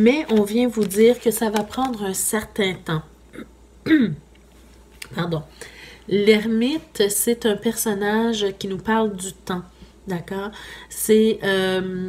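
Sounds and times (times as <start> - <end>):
woman clearing her throat: 3.3 - 4.3.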